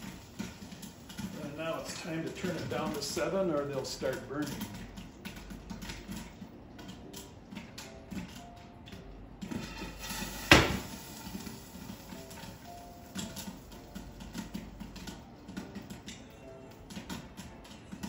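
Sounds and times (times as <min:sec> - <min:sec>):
popcorn popping in a pan: 0:00.0 - 0:18.0.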